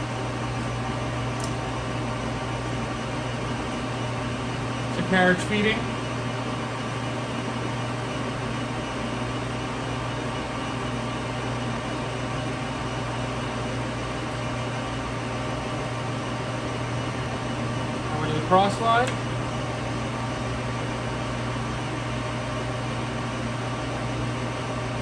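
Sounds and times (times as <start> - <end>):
lathe motor humming and whirring: 0.0 - 25.0.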